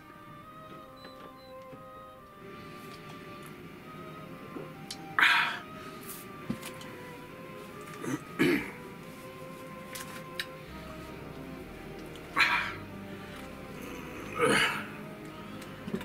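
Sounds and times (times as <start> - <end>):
soft background music: 0.0 - 16.0
man coughing: 8.0 - 8.8, 14.2 - 14.9.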